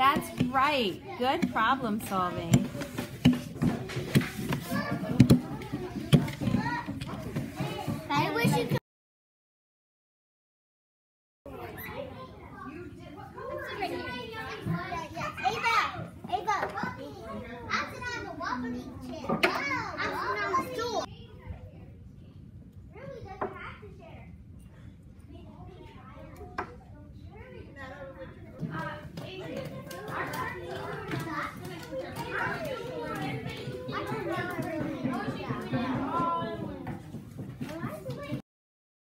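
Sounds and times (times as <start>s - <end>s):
young children talking: 0.0s - 8.8s, 11.5s - 24.4s, 25.2s - 38.4s.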